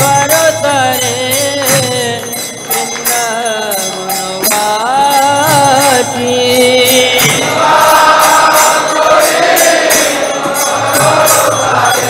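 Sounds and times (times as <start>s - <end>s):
devotional chanting: 0.0s - 12.0s
hand cymbals beat: 0.0s - 12.0s.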